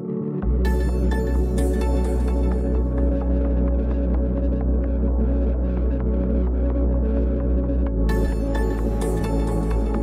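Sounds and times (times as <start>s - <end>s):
electronic music: 0.0s - 10.0s
deep bass drone: 0.4s - 10.0s.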